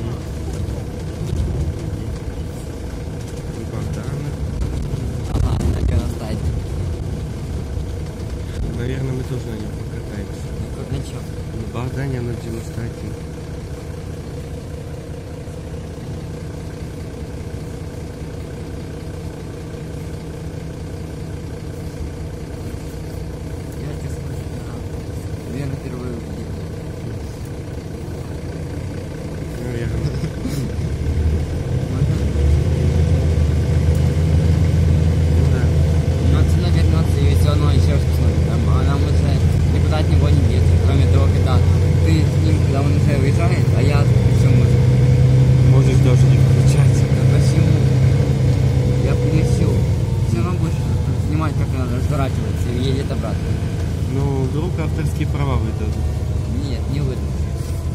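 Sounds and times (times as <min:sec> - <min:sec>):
bus engine drone: 0:00.0 - 0:57.9
road noise: 0:00.0 - 0:57.9.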